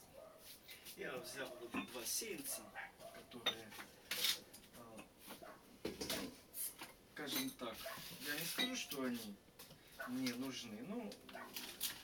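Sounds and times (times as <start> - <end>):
plastic tray rustling scrape: 7.8 - 9.3.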